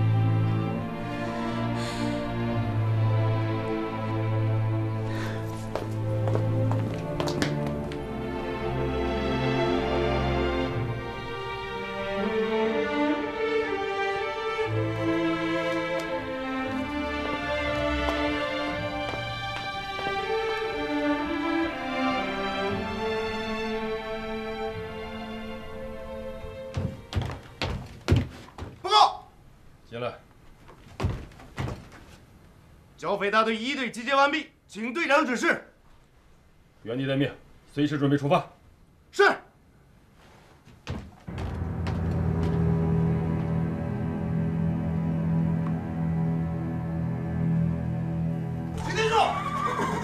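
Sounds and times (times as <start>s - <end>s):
background music: 0.0s - 28.1s, 41.2s - 50.0s
heavy footsteps on wooden floor: 5.0s - 8.5s, 15.7s - 21.2s, 26.3s - 28.8s, 30.5s - 32.3s, 40.5s - 44.0s
horse whinnying: 48.7s - 50.0s.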